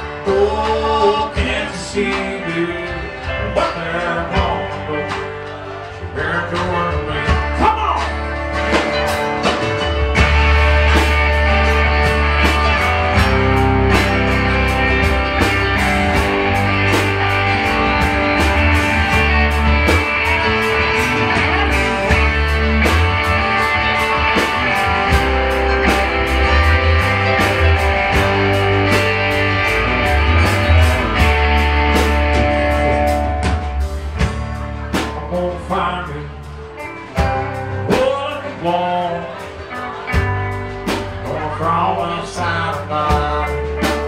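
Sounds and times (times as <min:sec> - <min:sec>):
bass guitar: 0:00.0 - 0:44.0
drum kit beat: 0:00.0 - 0:44.0
electric guitars: 0:00.0 - 0:44.0.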